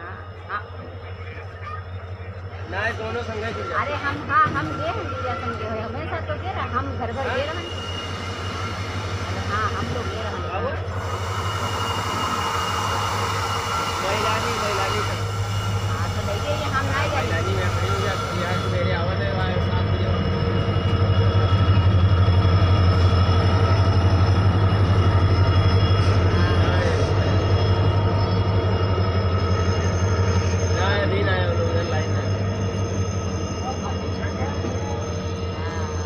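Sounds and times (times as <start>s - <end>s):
faint voices: 0.0s - 8.0s, 13.9s - 36.0s
diesel locomotive engine drone: 0.0s - 36.0s.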